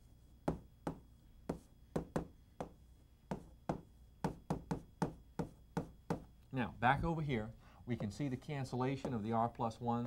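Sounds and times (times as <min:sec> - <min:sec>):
chalk tapping on a chalkboard: 0:00.4 - 0:06.3.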